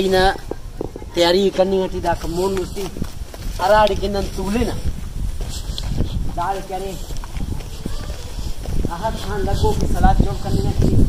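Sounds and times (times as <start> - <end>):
footsteps on dry dirt: 0.0 - 11.0.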